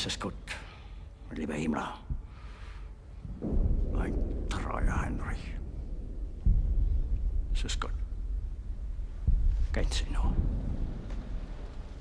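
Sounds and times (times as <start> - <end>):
low rumble: 1.8 - 12.0.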